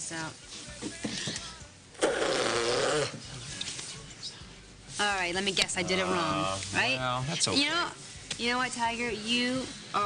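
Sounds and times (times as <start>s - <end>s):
raspberry blown on skin: 2.0s - 3.2s.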